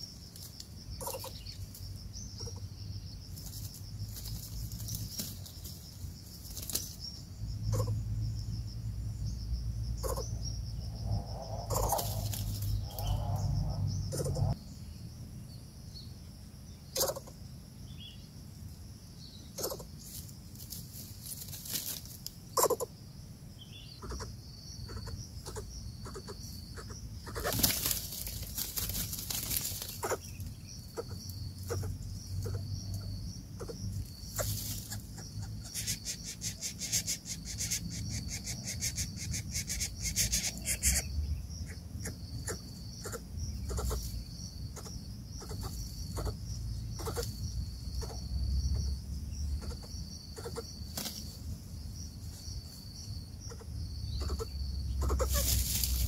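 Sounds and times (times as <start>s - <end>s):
rustles: 0.0s - 8.0s, 10.0s - 14.7s, 19.5s - 22.9s, 25.0s - 41.1s, 42.1s - 56.0s
high-pitched insect drone: 6.9s - 14.6s, 23.8s - 51.3s, 51.9s - 56.0s
low rumble: 7.4s - 14.7s.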